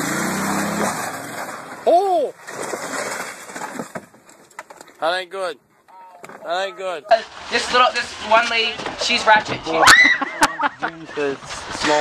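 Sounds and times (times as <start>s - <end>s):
golf cart scraping in grass: 2.4s - 4.0s, 7.1s - 9.5s.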